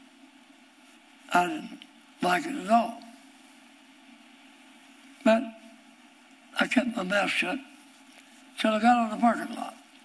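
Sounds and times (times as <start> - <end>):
faint background hum and hiss: 0.0 - 10.0.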